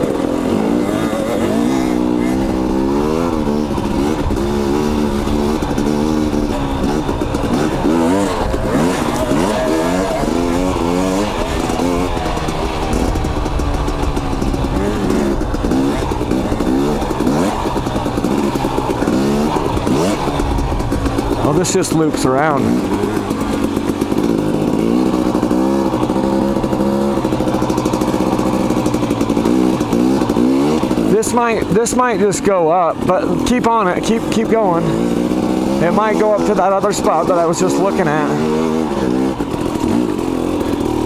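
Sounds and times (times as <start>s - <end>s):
dirt bike engine revving: 0.0s - 41.0s.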